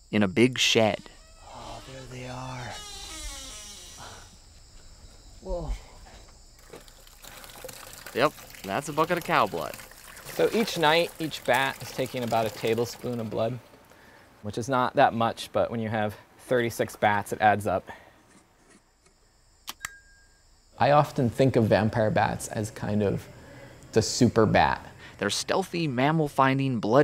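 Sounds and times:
liquid pouring into container: 6.6 - 13.7
sharp clicks: 19.0 - 20.0.

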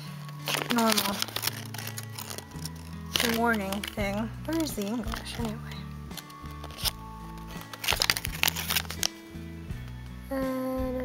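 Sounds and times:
paper leaflet rustling: 0.0 - 9.3
background music with low notes: 0.0 - 11.0.

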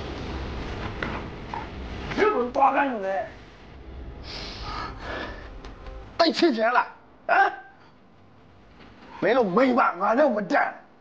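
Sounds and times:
short voiced exclamation: 7.3 - 7.8.

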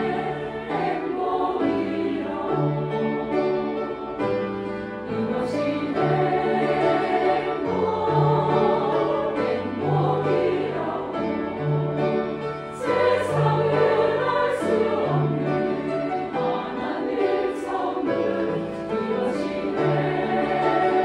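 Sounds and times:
choir singing: 0.0 - 21.0
grand piano accompaniment: 0.0 - 21.0.

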